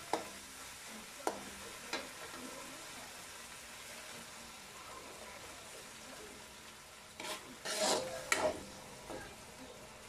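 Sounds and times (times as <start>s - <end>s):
metal spatula scraping wok: 7.1s - 9.2s.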